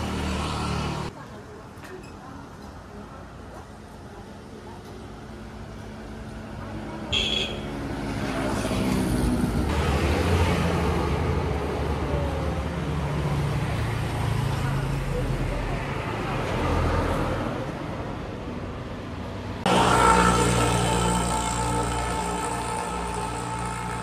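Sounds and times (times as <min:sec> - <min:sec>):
vehicle engine passing: 0:19.6 - 0:24.0.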